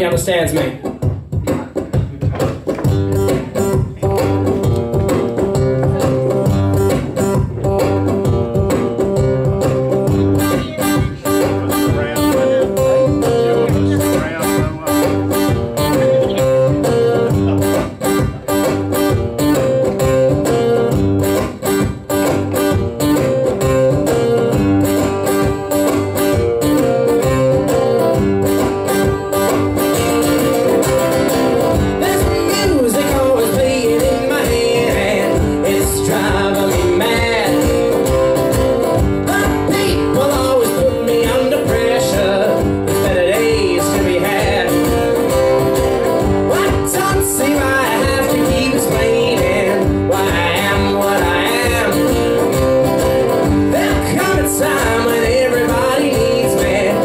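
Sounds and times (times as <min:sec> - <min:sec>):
acoustic guitar blues instrumental: 0:00.0 - 0:57.0.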